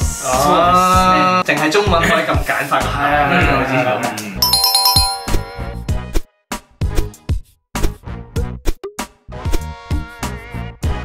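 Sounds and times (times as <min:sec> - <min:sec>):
chiming electronic jingle: 0:04.4 - 0:05.8.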